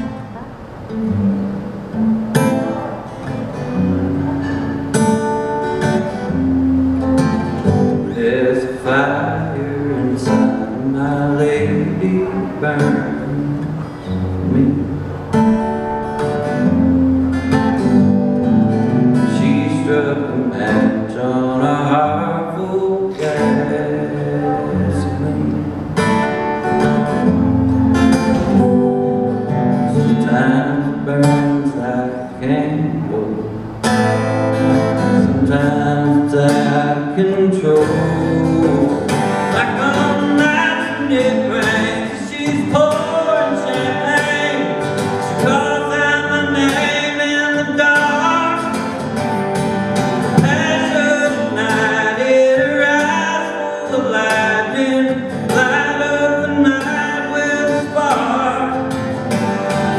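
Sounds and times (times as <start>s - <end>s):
acoustic guitar strumming: 0.0s - 59.9s
man singing: 2.4s - 15.6s, 17.5s - 49.2s, 50.0s - 59.9s.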